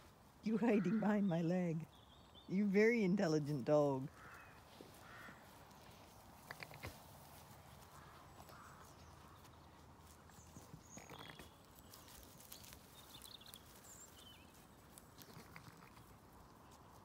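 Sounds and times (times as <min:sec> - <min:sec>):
soft rustling: 0:04.1 - 0:17.0.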